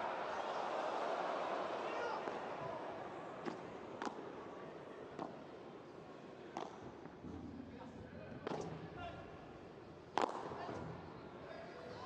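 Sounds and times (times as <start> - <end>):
ball hits: 10.2 - 10.6.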